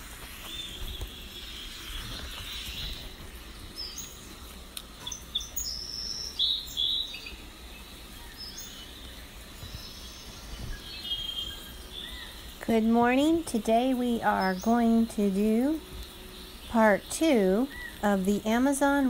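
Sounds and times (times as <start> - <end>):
birds chirping: 0.0 - 19.0
steady background hiss: 0.0 - 19.0.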